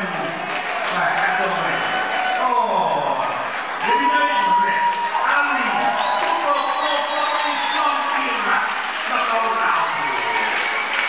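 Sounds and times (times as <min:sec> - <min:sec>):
man's voice: 0:00.0 - 0:10.6
crowd applauding: 0:00.0 - 0:11.0.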